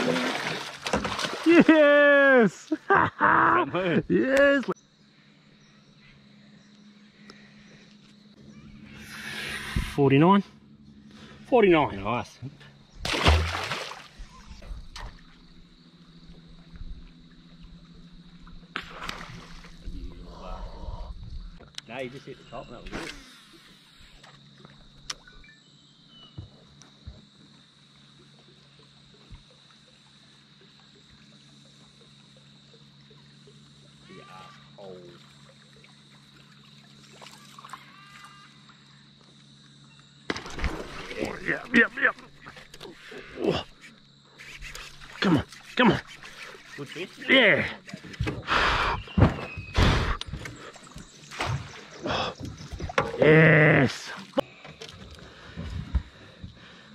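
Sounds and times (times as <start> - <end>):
fish splashing into water: 0.0 - 1.7, 13.0 - 15.5, 18.7 - 19.8, 40.3 - 42.8
faint steady hum: 0.0 - 49.1.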